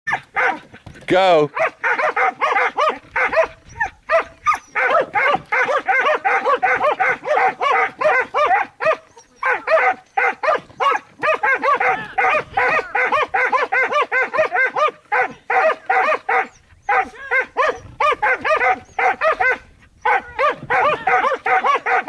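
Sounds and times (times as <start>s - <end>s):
dog barking: 0.1s - 0.6s, 1.5s - 22.0s.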